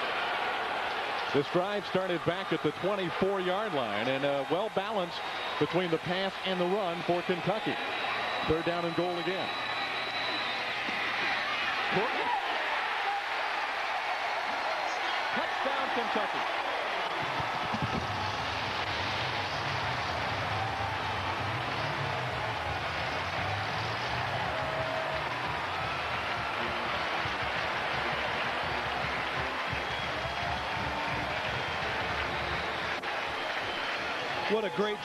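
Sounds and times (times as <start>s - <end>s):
stadium crowd cheering and applauding: 0.0s - 35.0s.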